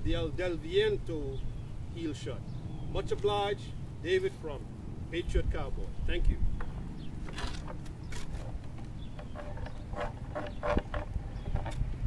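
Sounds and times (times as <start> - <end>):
wind on microphone: 5.2 - 12.0
wood knocking and creaking: 6.6 - 12.0.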